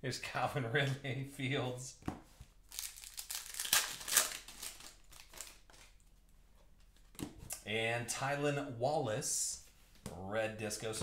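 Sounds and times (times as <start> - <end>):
wrapper crinkling and tearing: 2.7 - 6.0.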